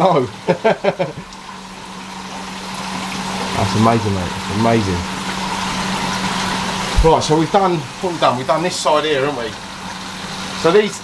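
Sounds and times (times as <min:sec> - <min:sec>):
pumps humming: 0:00.0 - 0:11.0
water hissing and air bubbles: 0:00.3 - 0:11.0.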